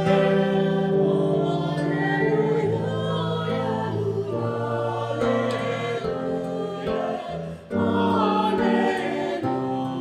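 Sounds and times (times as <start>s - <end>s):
choir singing held chords: 0.0s - 10.0s.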